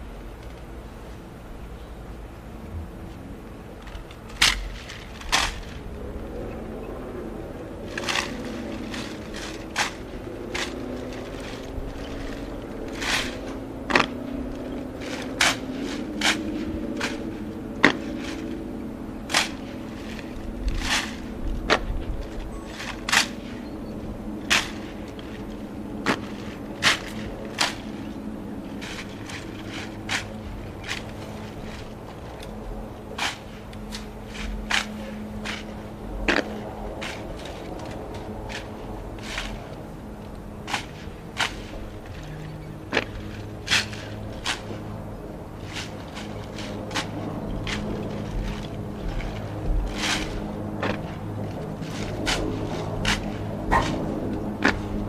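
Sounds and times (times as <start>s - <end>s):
low steady hum: 0.0s - 55.0s
rifle butts and heels striking ground: 3.8s - 6.0s, 7.8s - 55.0s
hands slapping rifles: 3.9s - 5.8s, 15.0s - 17.2s, 19.3s - 21.9s, 24.5s - 25.4s, 33.2s - 35.7s.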